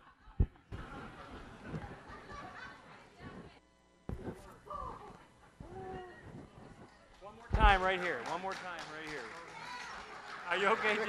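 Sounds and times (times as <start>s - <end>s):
faint voices in a hall: 0.0s - 11.0s.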